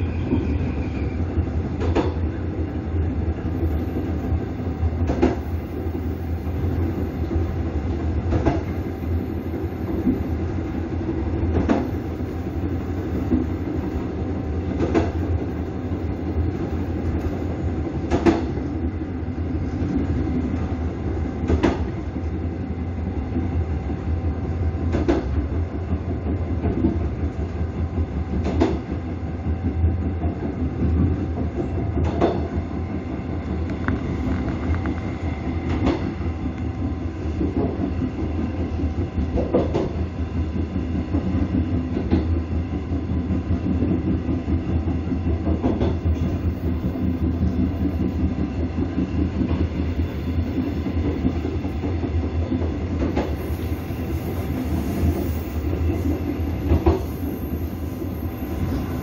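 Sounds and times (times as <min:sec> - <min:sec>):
train rumble and hum: 0:00.0 - 0:59.0.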